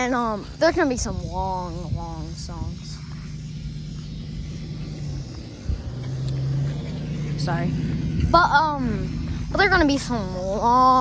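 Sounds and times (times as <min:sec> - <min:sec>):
low hum over a rumble: 0:00.0 - 0:11.0.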